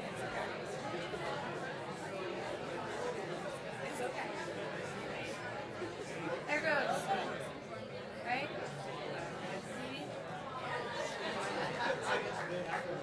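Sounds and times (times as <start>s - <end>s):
audience chatter in a hall: 0.0s - 13.0s.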